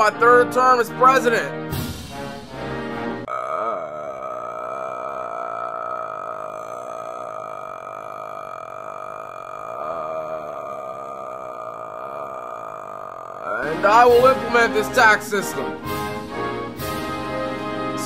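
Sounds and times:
man saying uhhh: 0:03.3 - 0:15.6.

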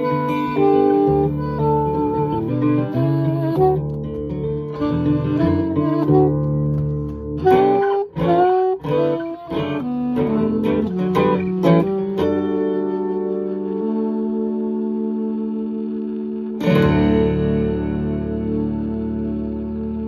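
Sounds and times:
acoustic guitar strumming: 0:00.0 - 0:20.0
saxophone playing: 0:00.0 - 0:20.0.

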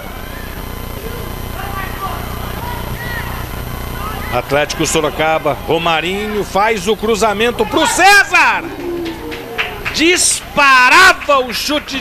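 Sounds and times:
distant voices and shouts: 0:00.0 - 0:12.0
steady low hum: 0:00.0 - 0:12.0.

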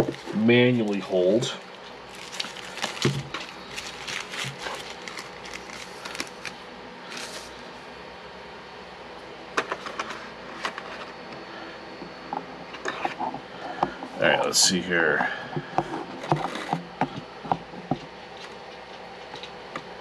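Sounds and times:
cloth rustling: 0:01.7 - 0:07.5.

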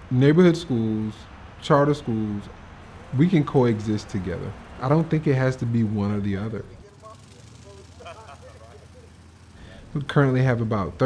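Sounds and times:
low hum of traffic: 0:00.0 - 0:11.0
man speaking: 0:00.1 - 0:11.0.

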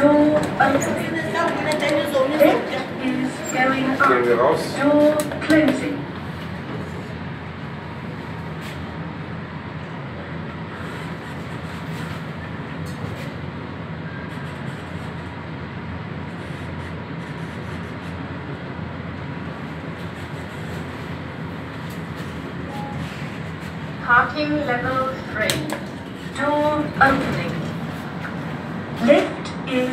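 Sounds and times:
lift rumble and hum: 0:00.0 - 0:29.9.

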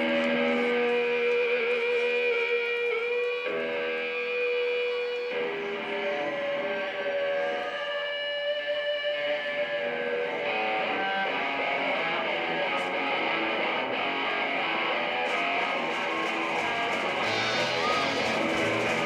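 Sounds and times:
electric guitar sustained chords: 0:00.0 - 0:19.0.

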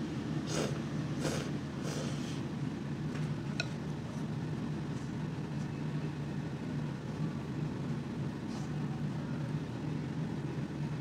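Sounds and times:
low hum of room noise: 0:00.0 - 0:11.0.

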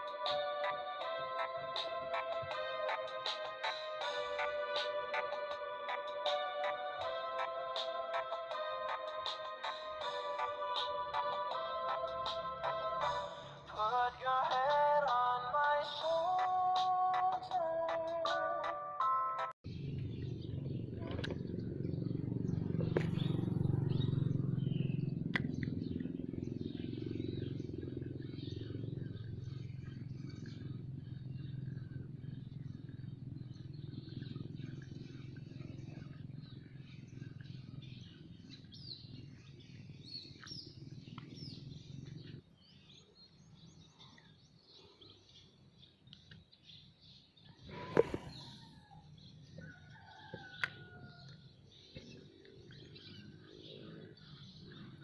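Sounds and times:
birds chirping: 0:19.0 - 0:55.0.

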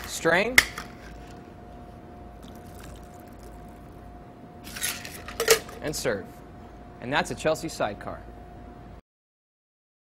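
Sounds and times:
steady low hum: 0:00.0 - 0:09.0
cocktail trickling into glass: 0:02.4 - 0:03.6.

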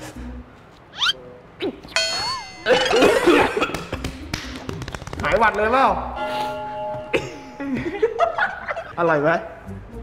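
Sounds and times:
bell-like ding: 0:02.0 - 0:03.1, 0:06.2 - 0:08.2.

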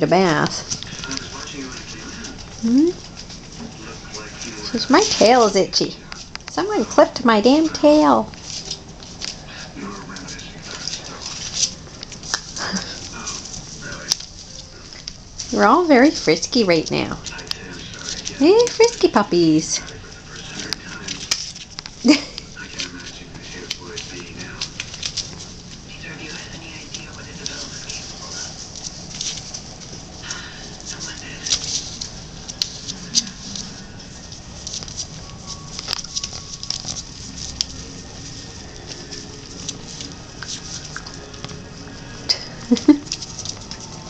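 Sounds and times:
paws rustling on newspaper: 0:00.1 - 0:44.0.

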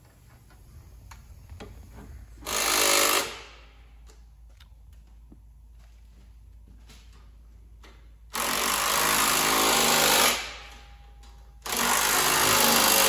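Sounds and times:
impact wrench running: 0:02.4 - 0:04.2, 0:07.8 - 0:13.0.

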